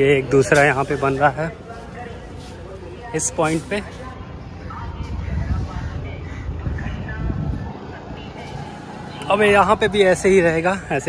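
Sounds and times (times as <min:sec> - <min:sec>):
faint distant voices: 0:00.0 - 0:11.0
low outdoor rumble: 0:00.0 - 0:11.0.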